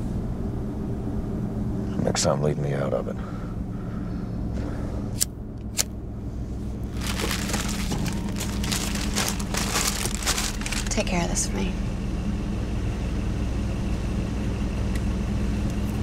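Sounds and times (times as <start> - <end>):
car engine idling: 0.6 - 16.0
crinkling and rustling: 6.8 - 11.2.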